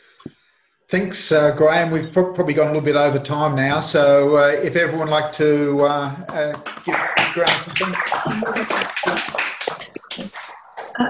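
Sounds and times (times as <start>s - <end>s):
voices: 0.9s - 11.0s
hands clapping: 6.2s - 11.0s.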